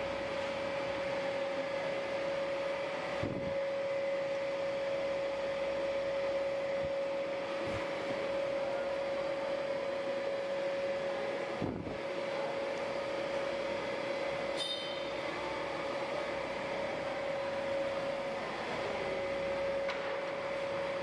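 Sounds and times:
machine drone: 0:00.0 - 0:21.0
short high squeak: 0:14.6 - 0:15.0.

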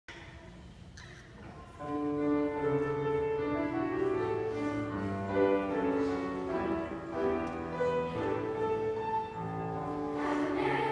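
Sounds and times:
choir singing sustained chords: 0:08.1 - 0:10.9.

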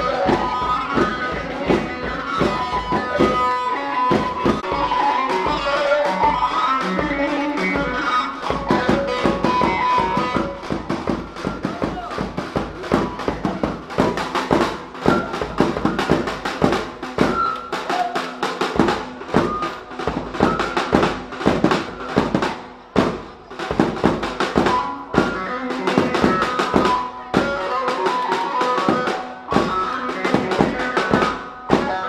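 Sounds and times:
rapid drum beat: 0:00.0 - 0:32.0.

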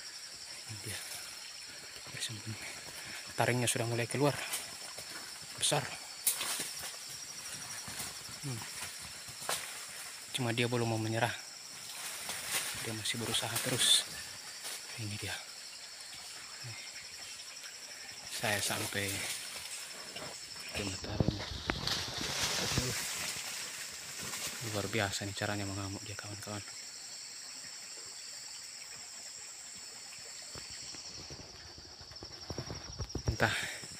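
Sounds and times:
snaps and crackles in dry leaves: 0:06.2 - 0:10.0, 0:11.8 - 0:15.0, 0:20.7 - 0:24.8
wild boar thrashing in dry leaves: 0:21.1 - 0:24.7.

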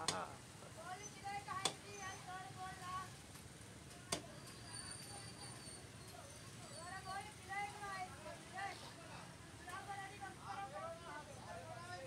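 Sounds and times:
people talking in a busy market: 0:00.0 - 0:12.0.

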